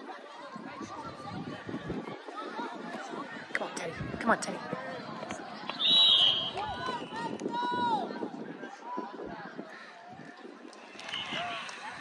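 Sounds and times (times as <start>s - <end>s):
voices of players and spectators: 0.0s - 12.0s
referee's whistle blast: 5.7s - 7.2s.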